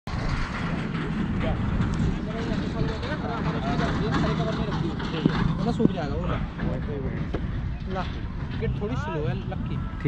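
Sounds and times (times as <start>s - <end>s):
wind buffeting microphone: 0.1s - 10.0s.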